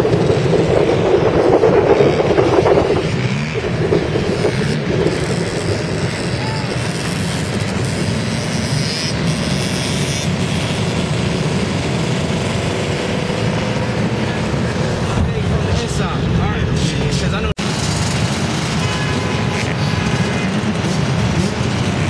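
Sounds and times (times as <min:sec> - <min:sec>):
dirt bike engines revving: 0:00.0 - 0:22.0.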